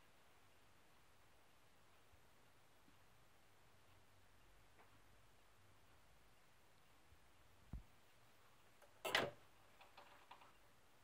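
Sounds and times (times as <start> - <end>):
faint record groove ticks: 0.0 - 9.0.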